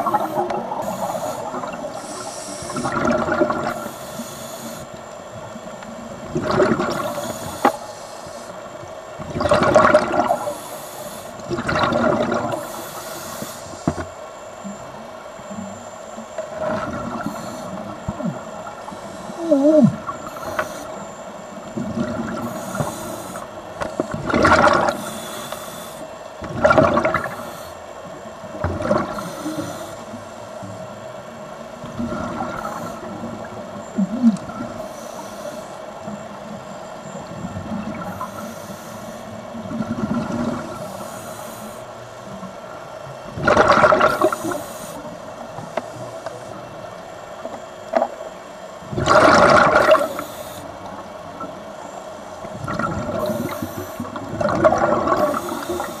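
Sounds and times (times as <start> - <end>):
underwater exhaled bubbles rushing: 0.0 - 4.9, 6.0 - 7.9, 9.2 - 10.6, 11.3 - 12.8, 15.5 - 25.4, 26.4 - 27.5, 28.4 - 34.9, 39.4 - 41.1, 41.9 - 48.2, 48.8 - 51.6, 52.2 - 56.0
faint steady hum: 0.0 - 56.0.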